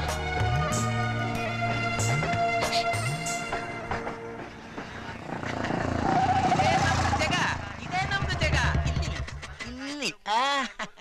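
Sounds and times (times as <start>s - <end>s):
motorcycle engine approaching: 3.5s - 9.6s
traffic: 3.9s - 9.2s.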